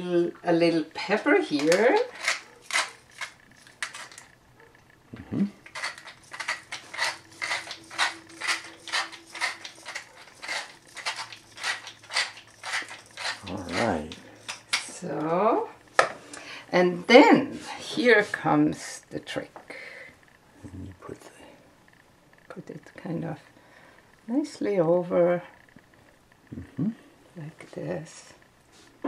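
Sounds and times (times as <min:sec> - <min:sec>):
pepper mill grinding: 0:01.0 - 0:04.4, 0:05.6 - 0:15.3.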